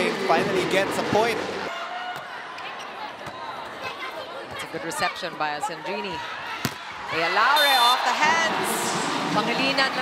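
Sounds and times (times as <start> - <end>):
arena crowd noise: 0.0 - 10.0.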